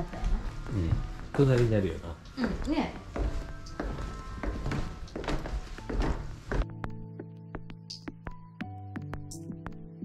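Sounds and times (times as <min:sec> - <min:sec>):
soft music: 0:00.0 - 0:10.0.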